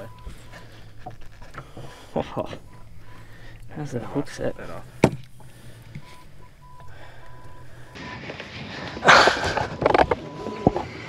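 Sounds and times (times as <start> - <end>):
electronic censor beeps: 0.0 - 0.9, 2.3 - 8.2, 9.6 - 10.9
loud burst of noise: 8.0 - 11.0.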